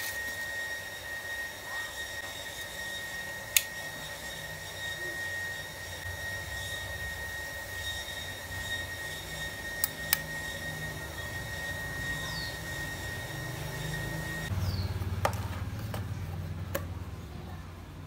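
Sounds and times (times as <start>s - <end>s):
constant high whine: 0.0s - 18.0s.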